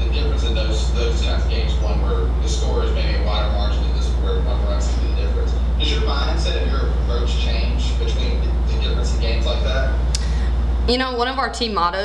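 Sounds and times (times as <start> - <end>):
faint indistinct speech: 0.0 - 9.9
low electrical hum: 0.0 - 12.0.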